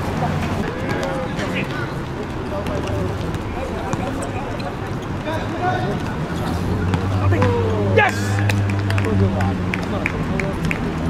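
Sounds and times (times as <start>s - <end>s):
players shouting: 0.5s - 11.0s.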